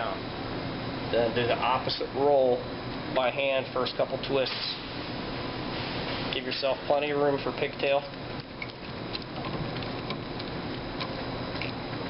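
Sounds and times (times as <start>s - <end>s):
steady background hum: 0.0s - 12.0s.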